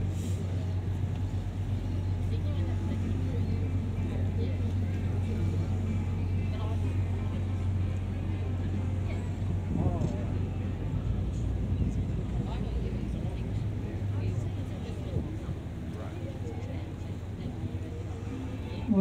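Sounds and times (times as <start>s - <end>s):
faint voices: 0.0s - 19.0s
ferry engine droning: 0.0s - 19.0s.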